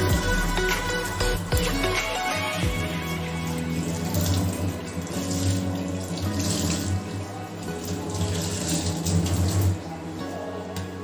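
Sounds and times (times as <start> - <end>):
cloth rinsed and wrung: 0.0 - 10.6
background music: 0.0 - 11.0
tap water running into sink: 2.7 - 9.9.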